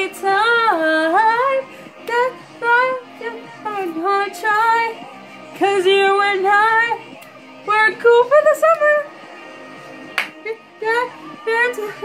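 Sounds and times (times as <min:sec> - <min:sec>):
girl singing: 0:00.0 - 0:05.0, 0:10.4 - 0:12.0
karaoke backing track: 0:00.0 - 0:12.0.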